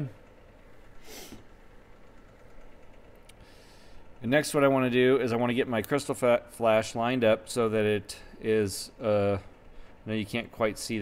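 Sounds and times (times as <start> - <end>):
low steady hum: 0.0 - 11.0
breathy exhale: 3.4 - 4.0.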